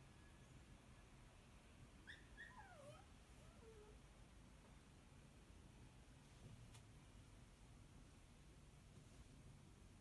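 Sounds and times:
pet animal crying: 2.0s - 4.0s.

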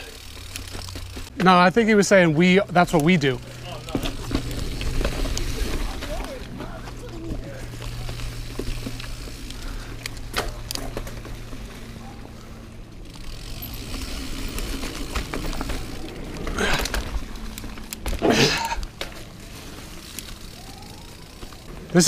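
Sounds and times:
bike clattering over bumps: 0.0s - 2.0s, 2.7s - 22.0s
bike tyres on dirt: 0.0s - 22.0s.

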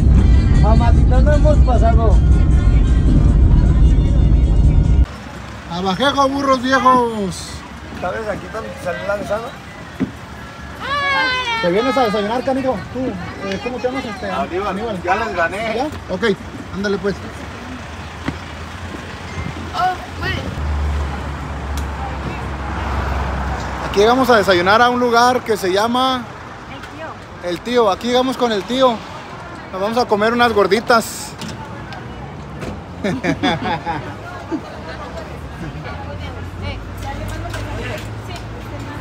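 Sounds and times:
vehicle rumble at highway speed: 0.0s - 10.8s, 11.9s - 39.0s.

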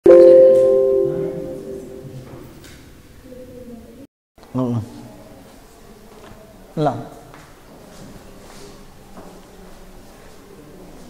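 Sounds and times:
bell-like chime ringing: 0.0s - 2.2s.

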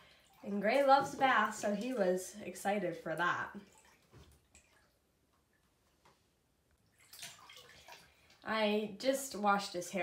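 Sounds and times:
bathwater splashes and drips: 0.0s - 9.1s.

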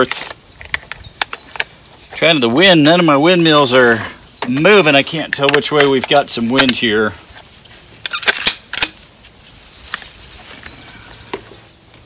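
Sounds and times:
rifle bolt clicks and knocks: 5.3s - 6.8s.

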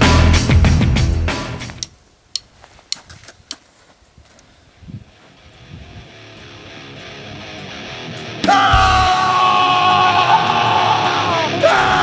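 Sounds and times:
heavy rock band: 0.0s - 1.6s, 6.1s - 12.0s
yelled vocal note: 8.4s - 12.0s.

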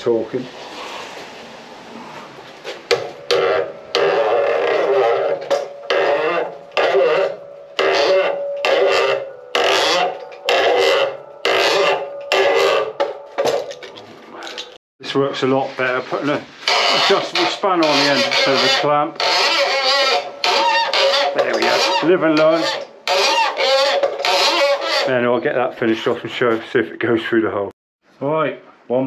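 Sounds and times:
chisel squeal: 2.8s - 14.8s, 16.2s - 25.4s
chisel rasping on wood: 2.9s - 13.2s, 16.6s - 25.1s.

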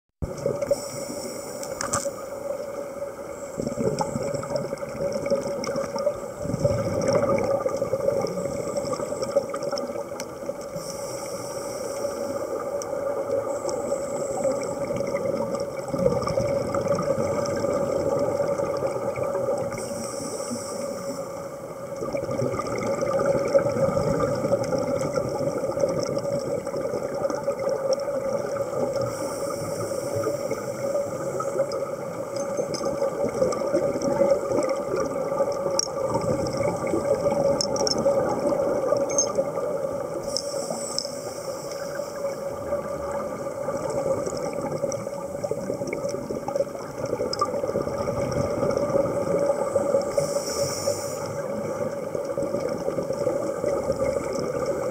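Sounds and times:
underwater drone: 0.2s - 54.9s
regulator bubbling exhalation: 3.6s - 9.8s.

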